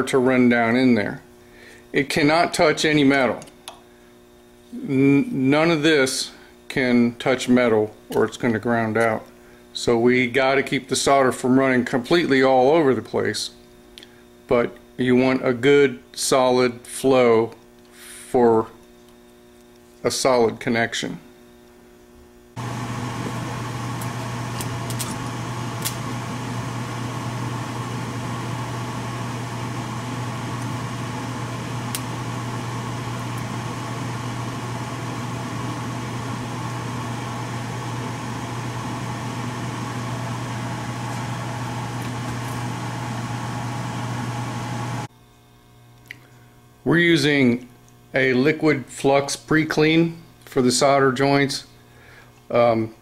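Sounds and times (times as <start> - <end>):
soldering gun buzzing: 22.6 - 45.1.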